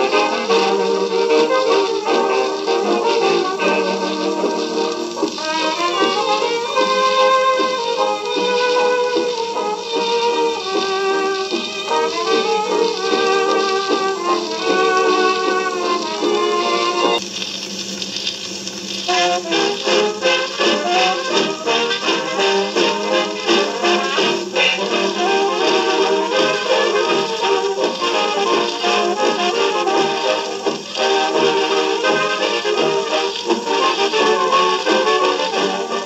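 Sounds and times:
jazz band on old record: 0.0s - 36.0s
record hiss: 0.0s - 36.0s.

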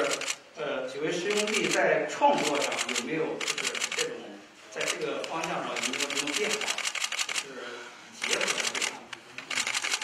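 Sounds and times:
camera shutters clicking: 0.0s - 0.4s, 1.3s - 4.1s, 4.8s - 7.5s, 8.2s - 10.0s
murmur of voices: 0.0s - 10.0s.

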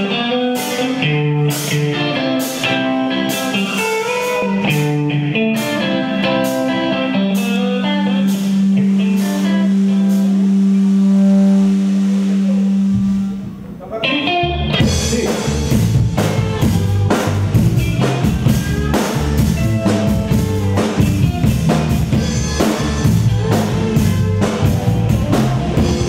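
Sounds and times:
drums and rock band playing: 0.0s - 26.0s
picked electric guitar notes: 0.0s - 26.0s.

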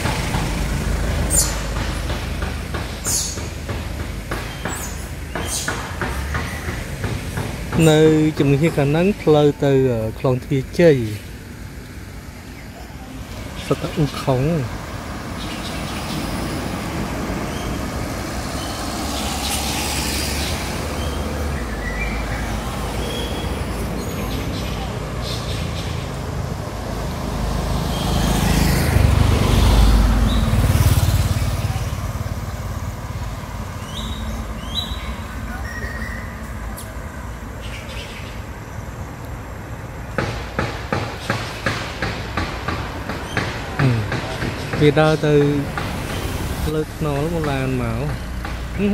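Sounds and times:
vehicle passing by: 0.0s - 3.7s, 13.1s - 37.5s
outdoor background noise: 0.0s - 48.9s.

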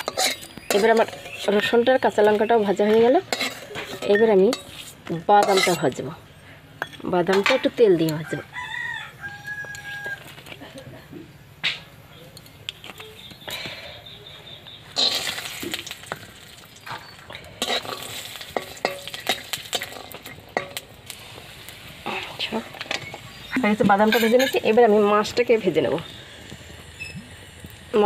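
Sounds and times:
metal spatula scraping pan: 0.0s - 8.2s, 15.0s - 15.9s, 16.8s - 20.9s, 22.4s - 25.3s
peanuts sizzling in oil: 0.0s - 28.0s.

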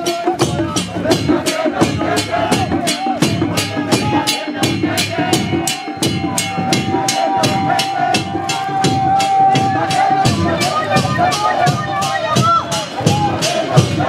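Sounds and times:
steady percussion beat: 0.0s - 14.0s
worshippers singing a hymn: 0.0s - 14.0s.

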